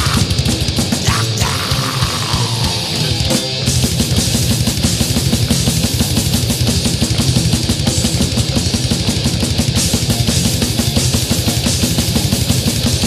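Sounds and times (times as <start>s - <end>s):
distorted guitars: 0.0s - 13.0s
rapid drum hits: 0.0s - 13.0s.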